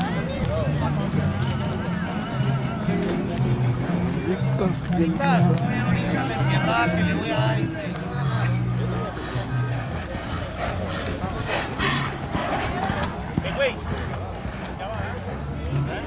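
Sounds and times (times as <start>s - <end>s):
spectators talking: 0.0s - 16.0s.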